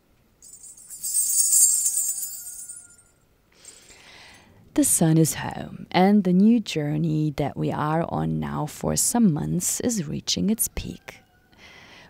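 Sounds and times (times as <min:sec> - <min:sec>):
faint held tone: 0:00.4 - 0:03.1
shaken metal jingles: 0:00.4 - 0:04.0.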